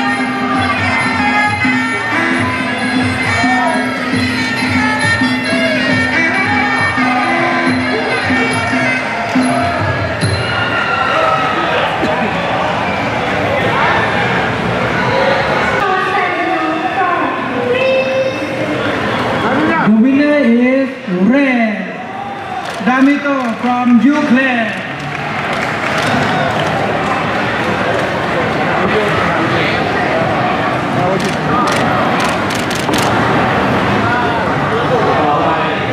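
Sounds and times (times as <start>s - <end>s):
music in an arena: 0.0s - 13.2s
crowd noise: 0.0s - 35.9s
voices in an arena: 0.0s - 35.9s
sharp clicks: 31.2s - 33.2s.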